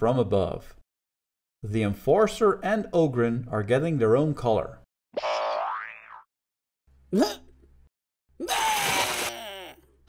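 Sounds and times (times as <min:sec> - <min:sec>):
springy cartoon boing: 0:05.2 - 0:06.3.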